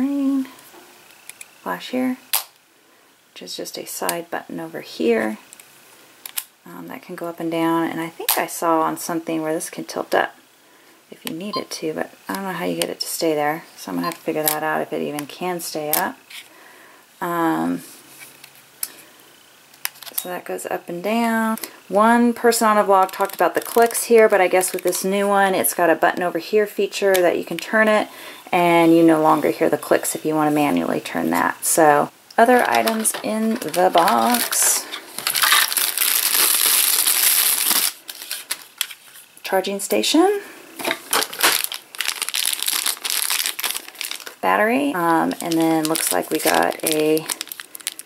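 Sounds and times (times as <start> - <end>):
plastic bag crinkling: 22.5 - 25.1, 32.4 - 39.3, 40.8 - 48.0.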